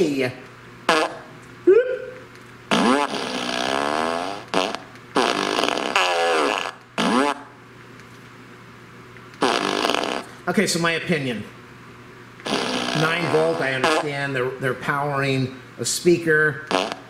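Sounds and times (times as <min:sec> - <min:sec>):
recorded fart sounds: 0:00.9 - 0:01.3, 0:02.7 - 0:07.6, 0:09.4 - 0:10.4, 0:12.4 - 0:14.3, 0:16.6 - 0:17.0.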